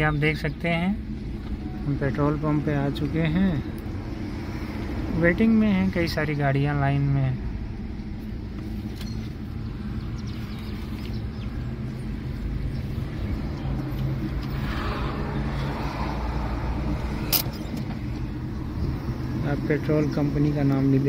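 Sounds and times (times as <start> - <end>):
car engine idling: 0.0 - 21.0
sharp click: 17.3 - 18.0.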